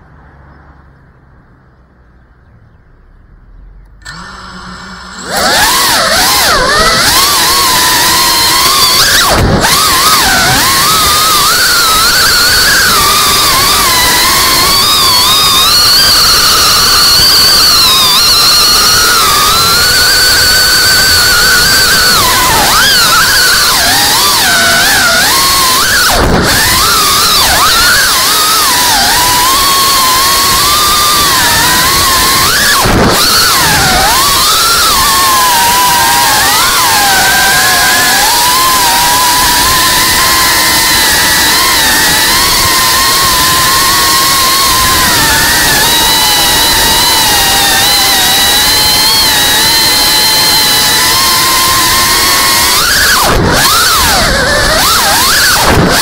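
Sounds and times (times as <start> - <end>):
quadcopter motors whining: 3.4 - 56.0.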